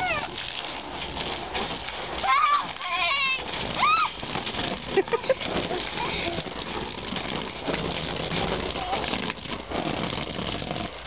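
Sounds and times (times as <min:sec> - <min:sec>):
bodies bouncing on trampoline: 0:00.0 - 0:11.0
water spraying and splashing: 0:00.0 - 0:11.0.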